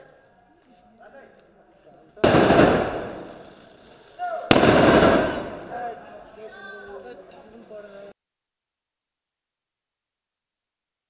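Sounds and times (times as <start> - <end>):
loud echoing blasts: 2.2 - 6.1.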